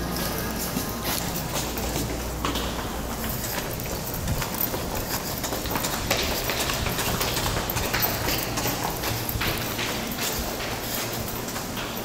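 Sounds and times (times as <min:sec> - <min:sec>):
hard-soled footsteps on hard floor: 0:00.0 - 0:12.0.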